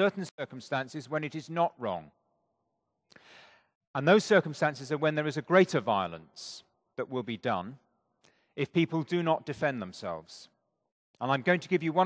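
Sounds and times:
man's soft intake of breath: 3.1 - 3.8.

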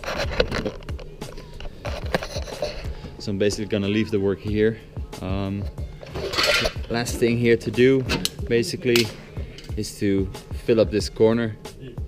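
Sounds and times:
camera handling knocks and scrapes: 1.6 - 2.9.

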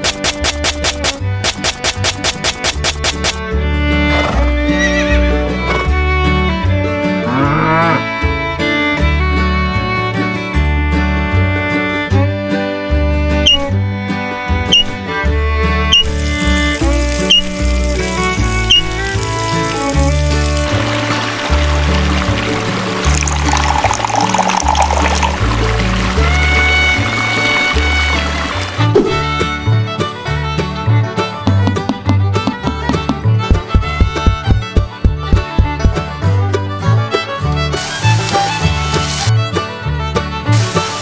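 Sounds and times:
background music: 0.0 - 41.0
horse whinnying: 4.7 - 5.2
water pouring into pond: 15.9 - 29.4
music with steady beat: 31.4 - 36.3.

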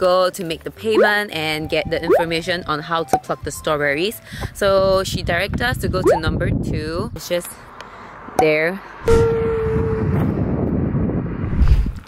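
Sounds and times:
wind buffeting microphone: 4.3 - 7.3, 9.0 - 12.0.

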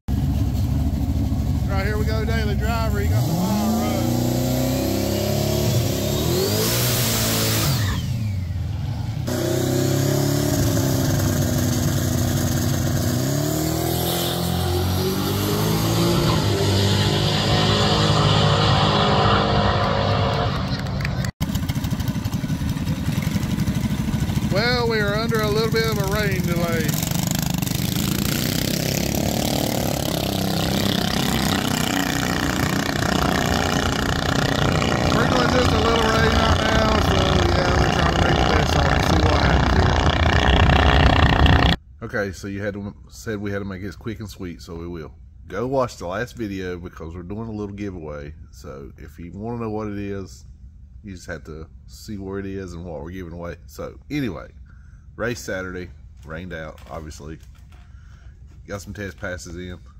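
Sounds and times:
drag car engine revving: 0.1 - 41.8
race track engine noise: 0.1 - 41.8.

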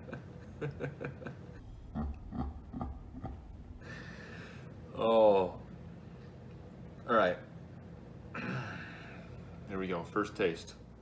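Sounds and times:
man laughing: 0.0 - 3.4.

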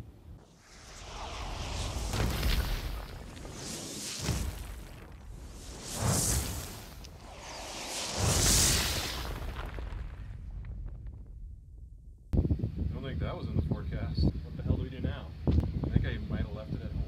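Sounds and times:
whooshing explosion blasts: 0.4 - 11.9
low rumble: 0.4 - 14.4.

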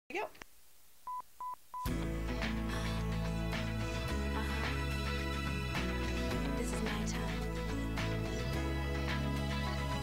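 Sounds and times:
music with singing: 1.9 - 10.0.

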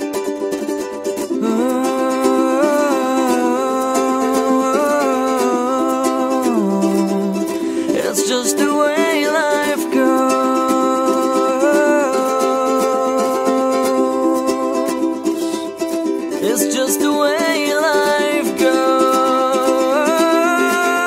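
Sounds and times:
ukulele strumming: 0.0 - 21.0
man singing wordless melody: 1.3 - 21.0.

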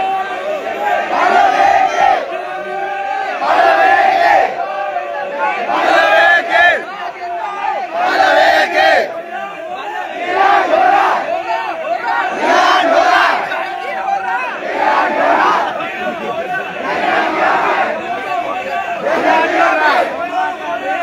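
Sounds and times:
crowd of men shouting: 0.0 - 21.0.

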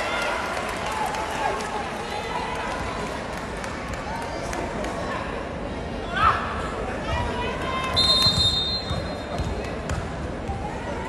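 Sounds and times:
indoor hall hubbub: 0.0 - 11.0.

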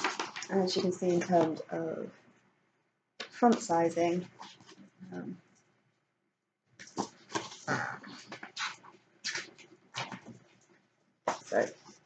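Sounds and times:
book pages being turned: 0.0 - 1.6, 3.2 - 5.0, 6.8 - 12.0.

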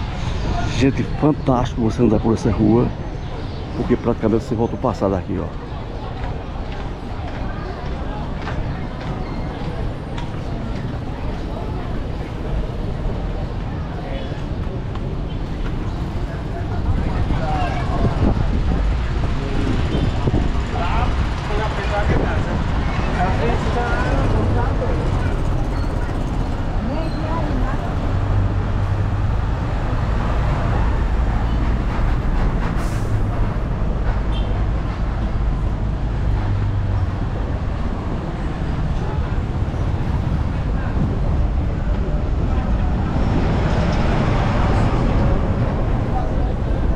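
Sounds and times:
vehicles on cobblestones: 0.0 - 46.9
people talking: 16.2 - 29.0, 38.3 - 46.9.

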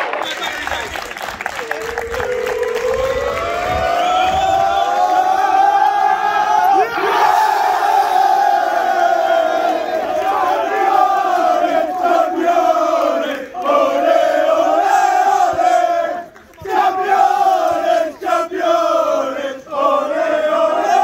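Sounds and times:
people cheering: 0.0 - 21.0
group shouting together: 2.2 - 11.0.

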